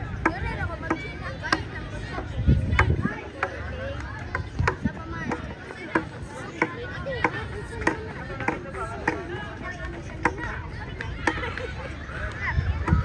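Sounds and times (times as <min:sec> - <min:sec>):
crowd voices: 0:00.0 - 0:13.0.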